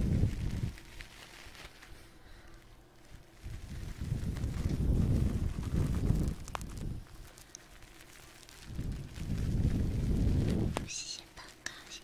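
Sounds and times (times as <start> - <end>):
fingers rubbing microphone: 3.4 - 7.1
soft whispering: 10.7 - 12.0.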